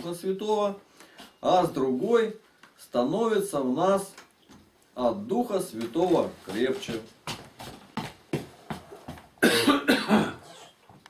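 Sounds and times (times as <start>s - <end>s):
person coughing: 9.4s - 10.8s.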